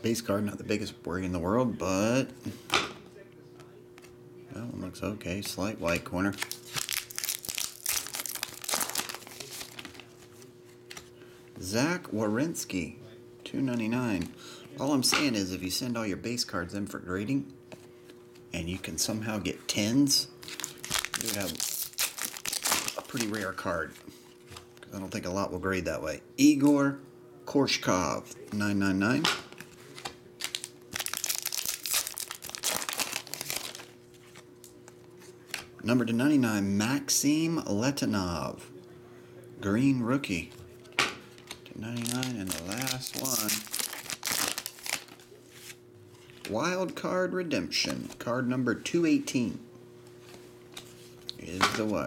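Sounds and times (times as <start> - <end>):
trading cards rustling and clicking: 5.3 - 11.1, 20.4 - 24.8, 29.5 - 35.0, 41.3 - 47.0
foil wrapper crinkling: 6.2 - 11.0, 20.4 - 24.0, 29.9 - 34.5, 41.4 - 45.8.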